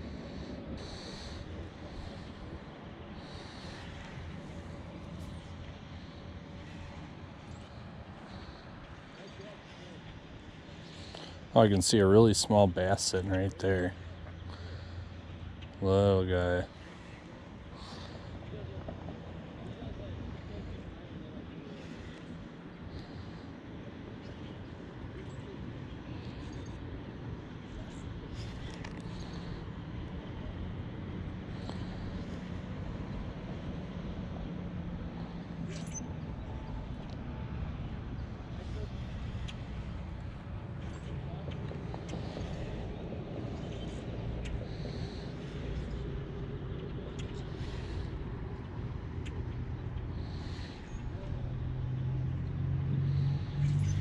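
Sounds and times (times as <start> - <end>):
distant road traffic rumble: 0.0 - 54.0
faint high clicks and chirps: 35.7 - 36.2.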